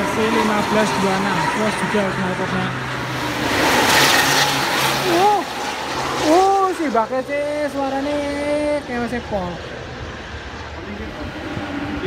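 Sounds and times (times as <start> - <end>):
vehicle passing at speed: 0.0 - 12.0.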